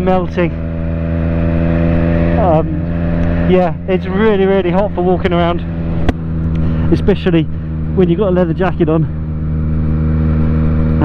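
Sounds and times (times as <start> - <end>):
motorcycle engine cruising: 0.0 - 11.0
wind and road noise: 0.0 - 11.0.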